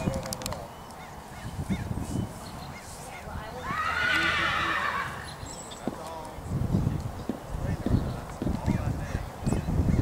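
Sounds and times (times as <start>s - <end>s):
horse whinnying: 3.6s - 5.4s.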